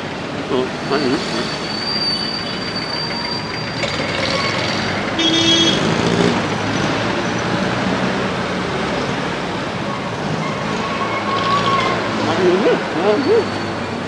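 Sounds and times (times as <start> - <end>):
cars and trucks passing: 0.0 - 14.0
car horn toot: 5.2 - 5.9.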